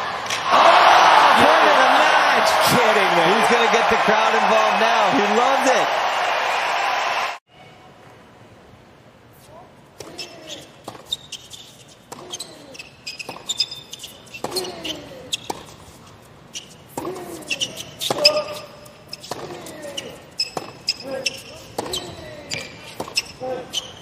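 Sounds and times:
shoes squeaking on court: 10.0s - 24.0s
tennis ball hitting rackets: 12.1s - 16.0s, 16.6s - 23.4s.

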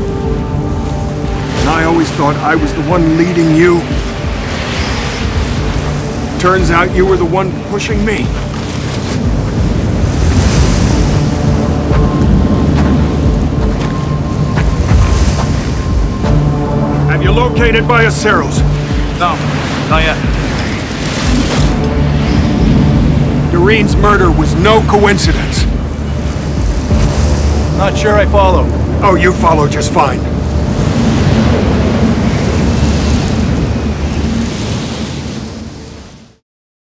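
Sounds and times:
blizzard wind rushing: 0.0s - 36.4s
deep rumble: 8.0s - 35.9s.

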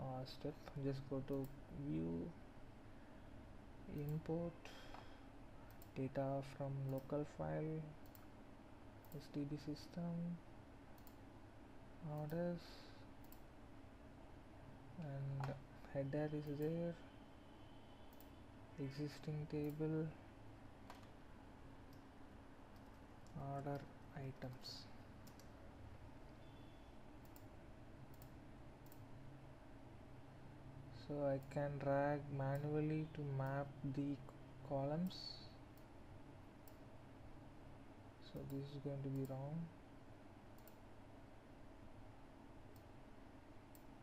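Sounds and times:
low steady hum: 0.0s - 44.0s
computer mouse click: 5.7s - 6.0s, 8.0s - 8.3s, 11.0s - 11.2s, 13.2s - 13.5s, 18.1s - 18.4s, 22.7s - 25.6s, 27.2s - 27.5s, 28.1s - 29.1s, 40.5s - 40.8s.

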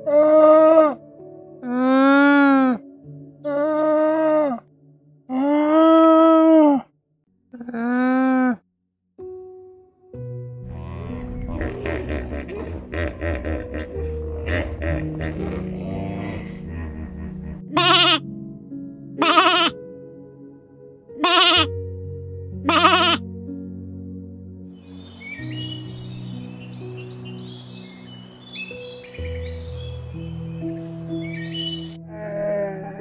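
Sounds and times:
soft background music: 0.0s - 8.4s, 9.2s - 33.0s
loud animal calls: 10.7s - 18.2s, 19.2s - 19.8s, 21.2s - 21.7s, 22.7s - 23.2s.

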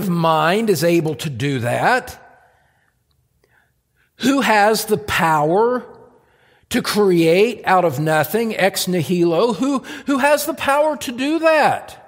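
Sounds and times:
man speaking: 0.0s - 2.4s, 4.2s - 6.1s, 6.7s - 12.0s
faint breath: 2.4s - 4.2s, 6.2s - 6.7s.

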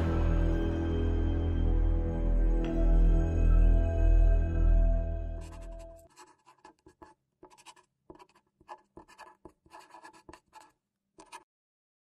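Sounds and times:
marker scratching on smooth surface: 5.4s - 11.4s.

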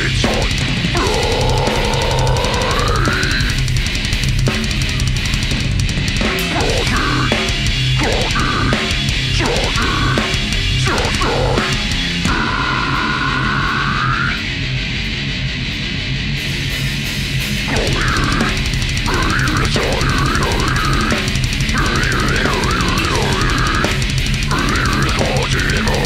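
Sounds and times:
bass guitar: 0.0s - 26.0s
drums and cymbals: 0.0s - 26.0s
electric guitars: 0.0s - 26.0s.

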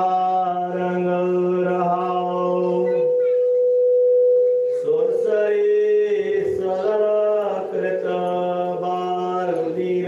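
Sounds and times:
person chanting: 0.0s - 3.4s, 4.6s - 10.0s
microphone feedback ringing: 0.7s - 9.3s.

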